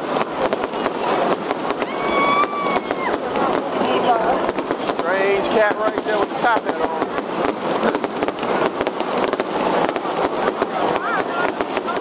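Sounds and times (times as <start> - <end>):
fireworks cracking and popping: 0.0 - 12.0.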